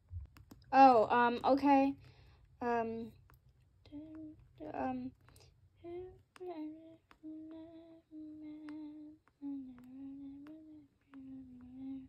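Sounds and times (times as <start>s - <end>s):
person humming a slow tune: 5.8s - 12.0s.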